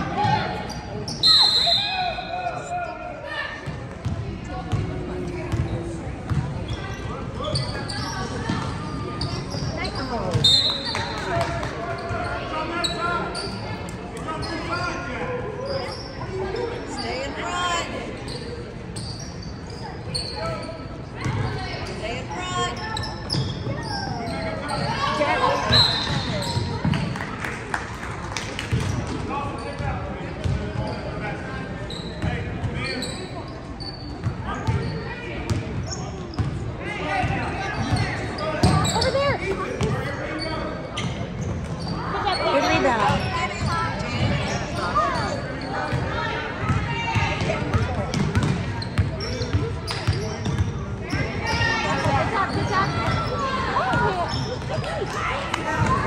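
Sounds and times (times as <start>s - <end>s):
basketball bouncing on wooden floor: 47.7s - 49.1s.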